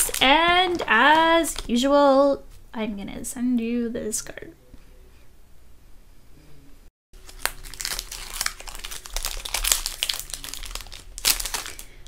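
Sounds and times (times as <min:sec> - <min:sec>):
plastic packaging crinkling: 0:00.0 - 0:01.8, 0:07.2 - 0:12.0.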